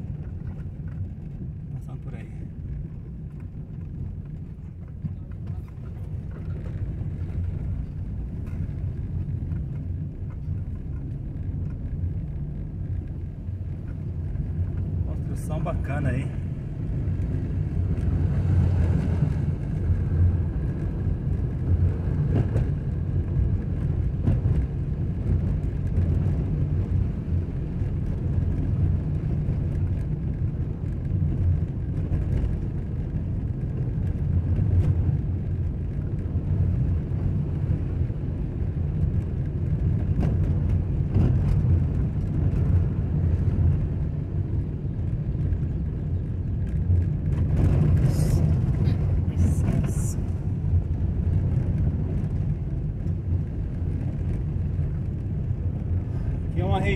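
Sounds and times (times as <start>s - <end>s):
car rumbling on dirt road: 0.0s - 56.9s.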